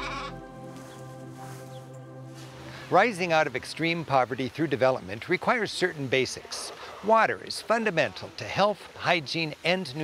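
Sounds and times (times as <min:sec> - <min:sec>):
sheep bleating: 0:00.0 - 0:00.4
music of sustained notes: 0:00.0 - 0:05.2.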